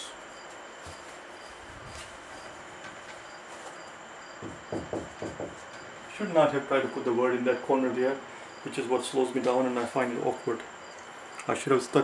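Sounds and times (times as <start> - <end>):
cricket chirping: 0.0 - 12.0
soft knock: 4.4 - 5.6.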